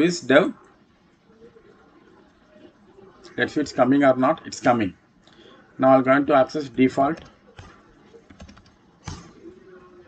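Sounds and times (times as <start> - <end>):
keyboard typing: 7.1 - 9.8.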